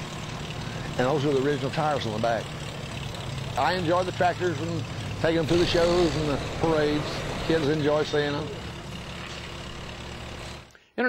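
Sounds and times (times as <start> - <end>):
tractor engine running: 0.0 - 10.8.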